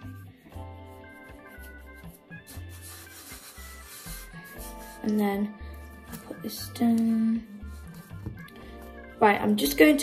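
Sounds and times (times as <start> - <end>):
background music with bass: 0.0 - 10.0
hand rubbing flour on worktop: 0.9 - 5.2.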